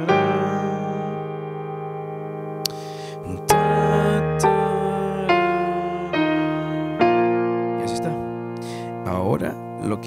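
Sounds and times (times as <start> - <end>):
piano chord ringing: 0.0 - 10.0.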